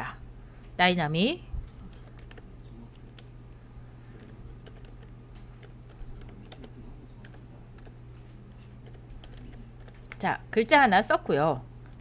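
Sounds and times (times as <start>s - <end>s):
steady low hum: 0.0s - 12.0s
keyboard typing: 1.8s - 3.3s, 4.1s - 8.0s, 8.8s - 10.3s.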